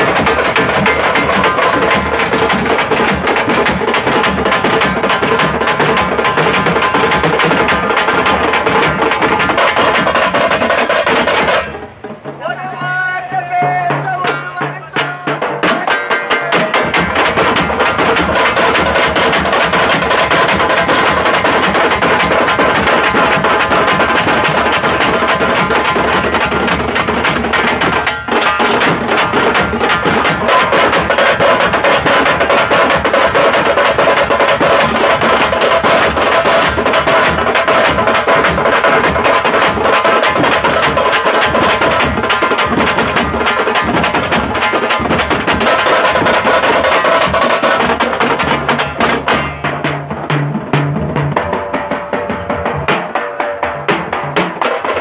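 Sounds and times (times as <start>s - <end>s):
frame drums beaten with sticks: 0.0s - 55.0s.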